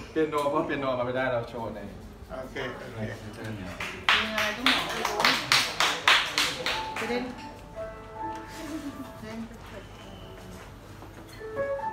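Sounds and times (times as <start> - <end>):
hands clapping: 3.7 - 7.4.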